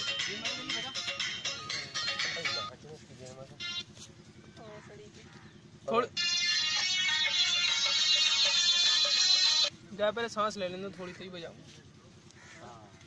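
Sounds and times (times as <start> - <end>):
reedy buzzing pipe tune: 0.0 - 2.8, 3.5 - 4.2, 5.9 - 9.8.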